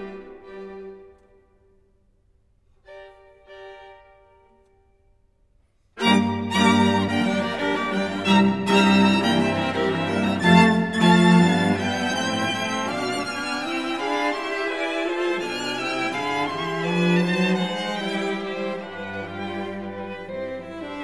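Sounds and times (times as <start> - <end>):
string quartet playing: 0.0 - 1.4, 2.8 - 4.6, 6.0 - 21.0.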